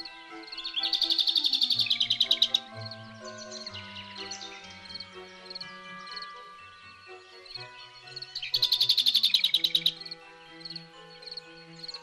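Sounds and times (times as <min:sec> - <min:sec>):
soft background music: 0:00.0 - 0:12.0
songbird trilling: 0:00.0 - 0:12.0.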